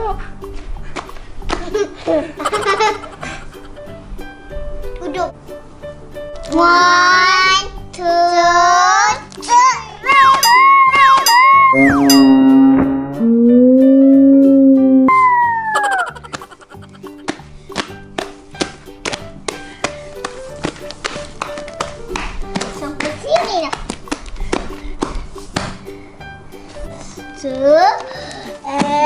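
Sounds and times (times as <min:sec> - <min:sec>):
background music: 0:00.0 - 0:13.7, 0:14.9 - 0:23.6.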